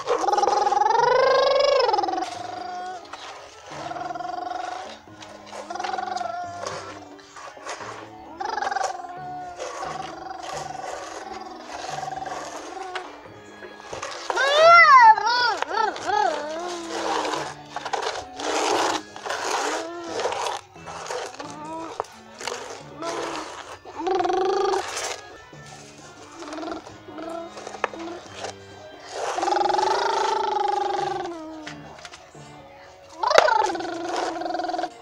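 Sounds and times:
child growling: 0.0 - 3.1, 3.7 - 7.0, 8.2 - 13.2, 14.3 - 17.6, 18.6 - 22.1, 22.9 - 25.2, 26.3 - 28.3, 29.2 - 31.8, 33.2 - 35.0
child crying out: 0.1 - 3.1, 5.6 - 7.0, 8.3 - 13.1, 14.3 - 17.4, 21.4 - 22.1, 24.0 - 25.0, 29.4 - 31.7, 33.2 - 35.0.

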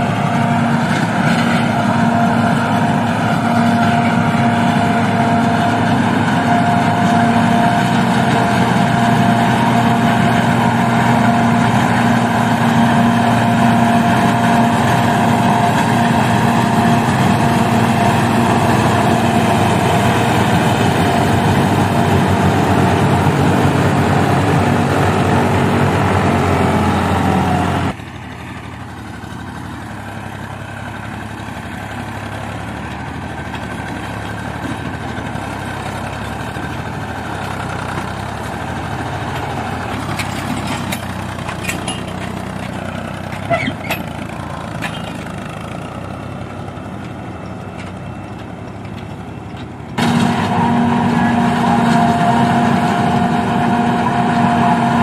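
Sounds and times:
forage harvester chopping with whine: 0.0 - 55.0
tractor diesel engine: 0.0 - 55.0.

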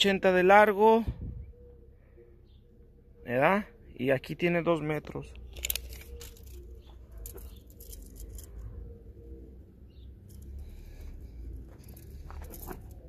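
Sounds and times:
handling clicks and scuffs: 5.1 - 8.8, 10.2 - 13.0.

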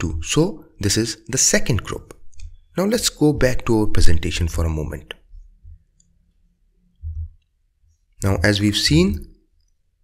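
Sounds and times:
soft low thumps: 3.3 - 4.3, 7.0 - 7.4.

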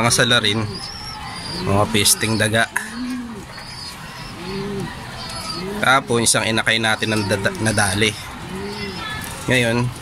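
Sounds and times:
pigeons cooing: 0.0 - 9.2.

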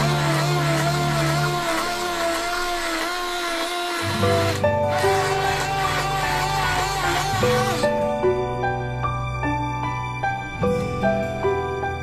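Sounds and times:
hand blender motor whine: 0.0 - 8.0.

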